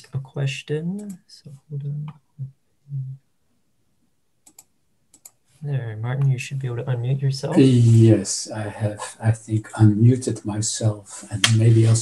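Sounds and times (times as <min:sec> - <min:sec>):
computer mouse clicks: 0:04.4 - 0:05.4.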